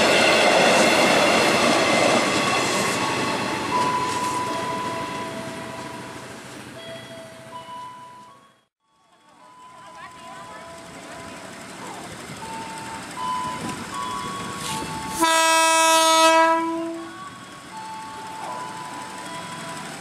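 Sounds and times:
electric train horn blast: 15.1 - 17.1.

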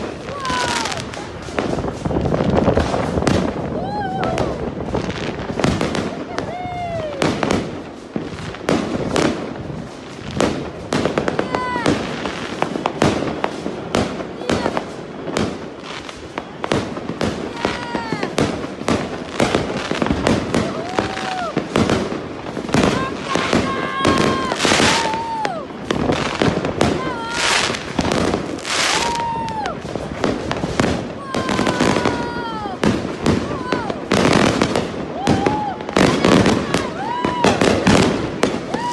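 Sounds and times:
people shouting: 0.0 - 1.3, 3.7 - 5.3, 11.2 - 12.1, 14.4 - 14.9, 17.2 - 18.5, 19.5 - 22.1, 22.7 - 29.9, 30.8 - 38.9
fireworks bangs and crackles: 0.0 - 38.9.

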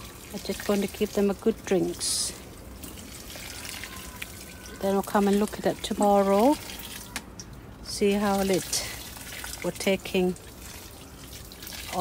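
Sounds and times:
water trickling onto soil: 0.0 - 12.0.

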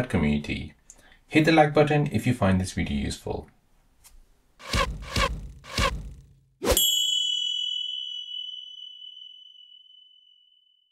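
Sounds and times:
bright metallic ding: 6.8 - 10.3.

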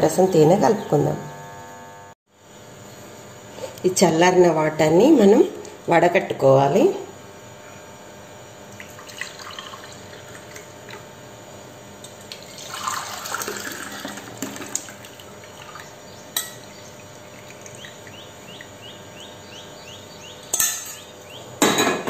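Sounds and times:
liquid poured and splashing: 8.8 - 11.0, 12.2 - 15.8.

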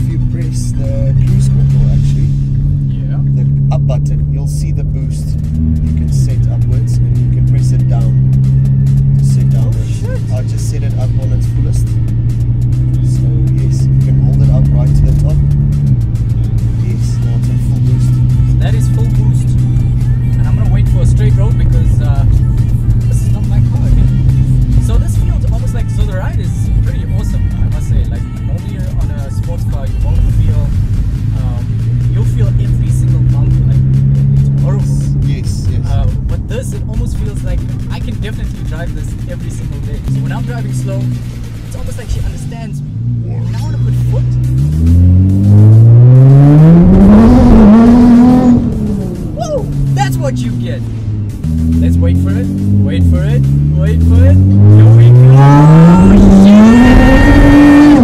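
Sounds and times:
two men talking: 0.0 - 44.6, 46.3 - 58.0
background music: 0.0 - 58.0
car engine cabin drone: 0.0 - 58.0.

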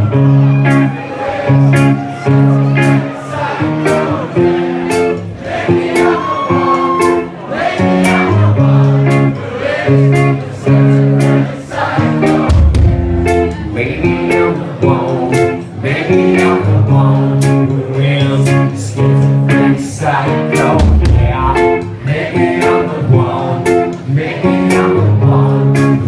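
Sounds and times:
bass: 0.0 - 0.9, 1.5 - 3.1, 5.9 - 26.0
electric guitar chords: 0.0 - 26.0
drums and cymbals: 12.3 - 13.5.

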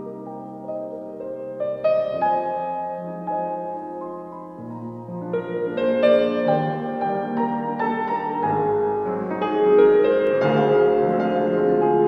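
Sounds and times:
grand piano improvisation: 0.0 - 12.0.

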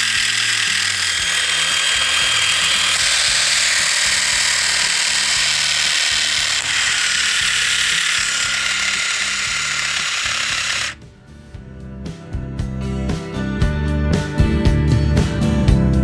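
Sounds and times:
electric shaver buzzing: 0.0 - 11.0.

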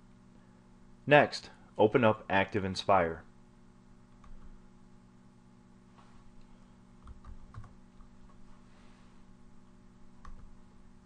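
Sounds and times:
steady low hum: 0.0 - 11.0
keyboard typing: 7.0 - 8.4.

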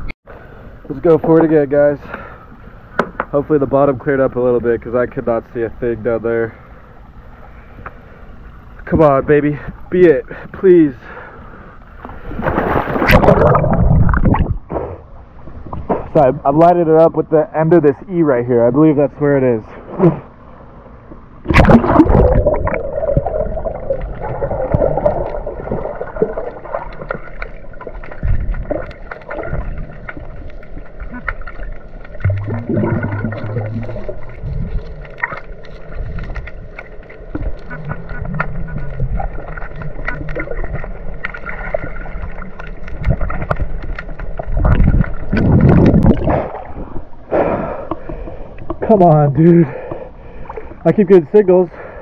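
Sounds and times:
underwater churning and gurgling: 10.6 - 15.9, 21.2 - 52.0
rush of water: 21.5 - 47.1.

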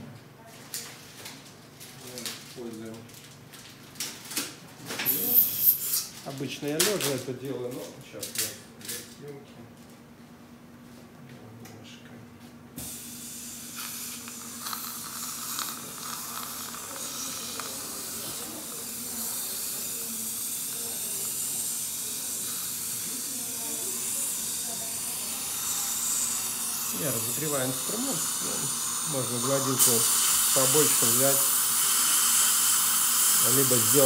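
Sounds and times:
dental suction hissing: 5.1 - 6.1, 12.8 - 34.0.

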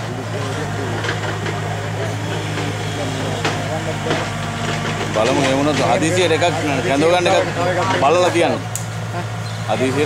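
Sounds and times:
engine idling: 0.0 - 10.0
people's voices: 0.0 - 10.0.

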